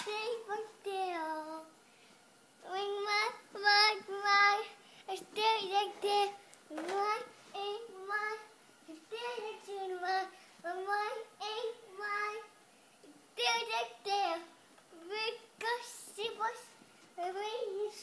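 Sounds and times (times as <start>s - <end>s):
girl singing unaccompanied: 0.0s - 1.8s, 2.6s - 18.0s.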